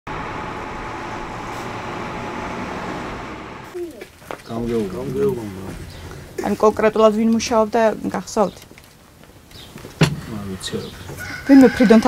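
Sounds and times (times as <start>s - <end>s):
heavy truck passing: 0.1s - 3.9s
road traffic driving by: 0.1s - 7.8s, 10.0s - 12.0s.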